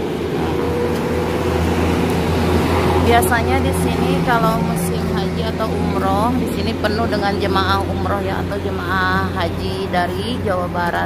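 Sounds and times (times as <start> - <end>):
road traffic: 0.0 - 11.0
vehicle engine hum: 0.0 - 11.0.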